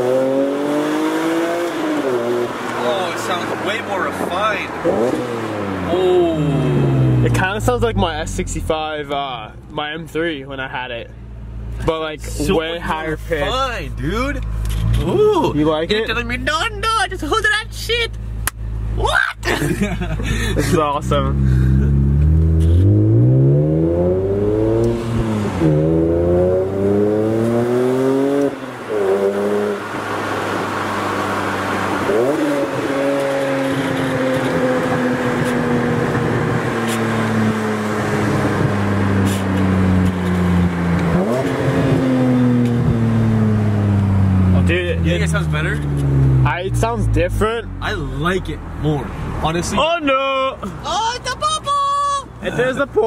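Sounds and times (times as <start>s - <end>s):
car engine revving: 0.0s - 53.0s.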